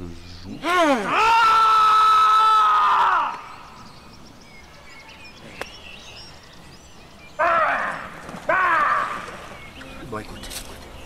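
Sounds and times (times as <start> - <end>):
quiet outdoor background: 0.0 - 11.0.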